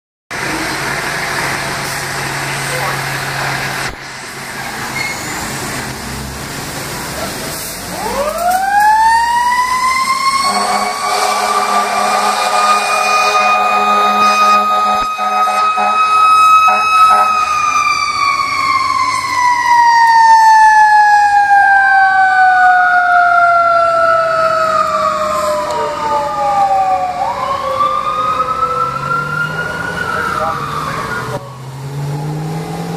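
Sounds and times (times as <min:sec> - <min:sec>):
truck engines running: 0:00.3 - 0:32.9
mechanical siren wailing: 0:07.9 - 0:32.4
steady horn: 0:10.0 - 0:17.9.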